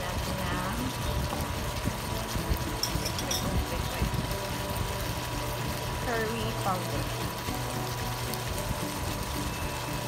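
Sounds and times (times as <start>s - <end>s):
chicken sizzling in a wok: 0.0s - 10.0s.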